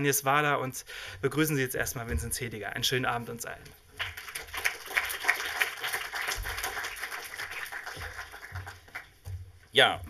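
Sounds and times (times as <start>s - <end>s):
audience applauding: 4.0s - 9.2s.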